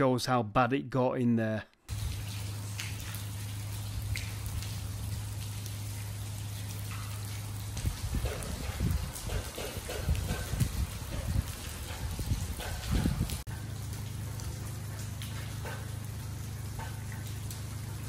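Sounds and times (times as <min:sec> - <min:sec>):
water dripping onto flooded floor: 0:01.9 - 0:18.0
low thumps and rumbles: 0:07.8 - 0:17.2.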